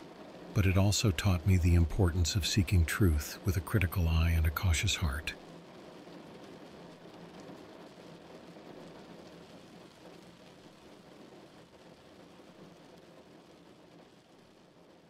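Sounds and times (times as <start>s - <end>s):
heavy rain on a car: 0.0s - 15.0s.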